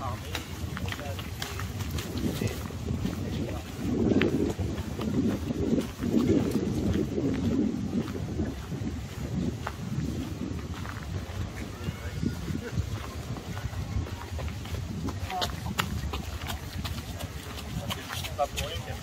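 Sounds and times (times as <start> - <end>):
people talking: 0.0 - 6.4, 11.3 - 19.0
footsteps on gravel: 0.0 - 19.0.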